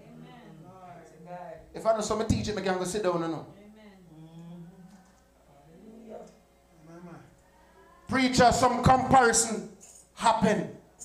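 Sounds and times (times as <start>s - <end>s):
person murmuring: 3.6s - 5.0s.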